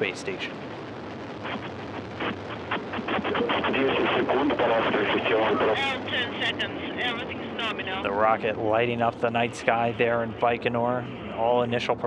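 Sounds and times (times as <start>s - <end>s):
radio voice calls: 0.0s - 0.6s, 1.4s - 12.0s
rocket engines roaring: 0.0s - 12.0s.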